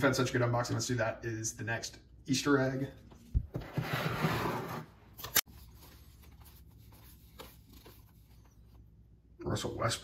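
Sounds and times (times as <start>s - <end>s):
plastic card box scraping: 3.6s - 5.0s
cards shuffling: 5.2s - 8.6s.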